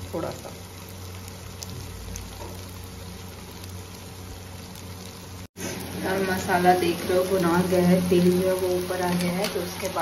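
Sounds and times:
masala sizzling in oil: 0.0 - 10.0.

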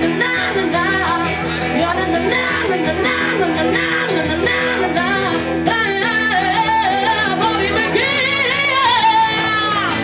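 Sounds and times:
guitars playing sustained chords: 0.0 - 10.0
woman singing into a microphone: 0.0 - 10.0.

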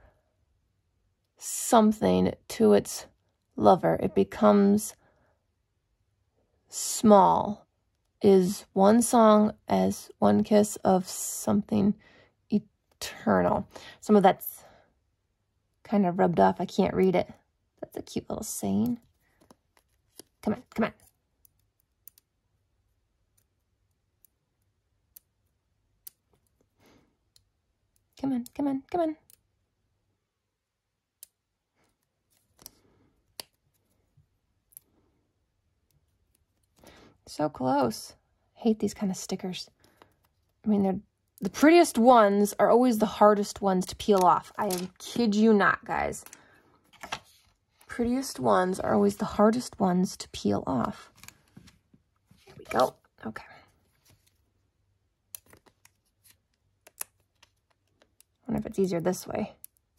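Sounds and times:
tweezers clicking: 21.0 - 22.3
light paper rustle: 46.9 - 47.6.

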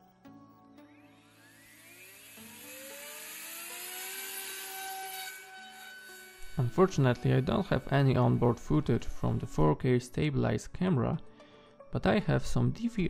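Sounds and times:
faint background music: 0.0 - 13.0
small motor propeller whine: 0.8 - 9.4.

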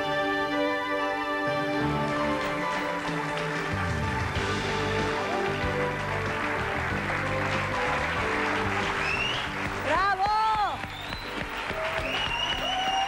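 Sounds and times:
instrumental theme music: 0.0 - 13.0.

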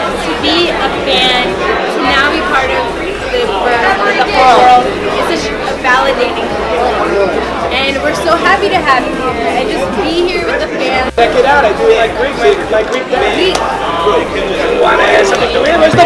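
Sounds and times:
crowd chatter in a hall: 0.0 - 16.0
people talking: 0.0 - 16.0.

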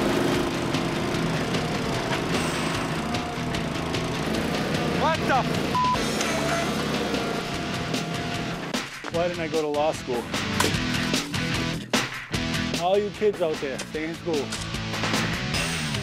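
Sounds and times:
small engine running: 0.0 - 8.7
censor bleep: 5.8 - 6.0.

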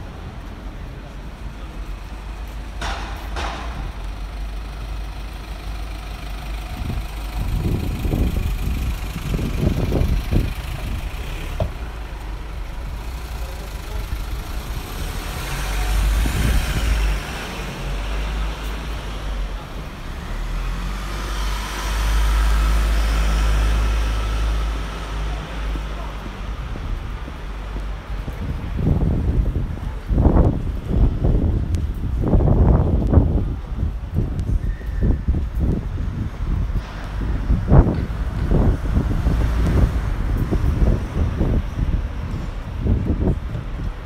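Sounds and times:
low traffic rumble: 0.0 - 44.0
vehicles passing: 0.0 - 44.0.

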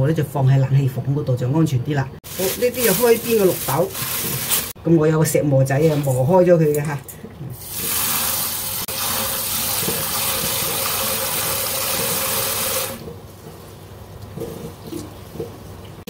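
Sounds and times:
tap water running into metal bowl: 7.6 - 13.1.

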